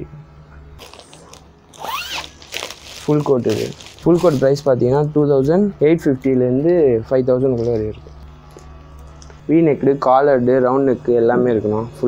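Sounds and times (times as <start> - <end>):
plastic garment bag crinkling: 0.8 - 4.7.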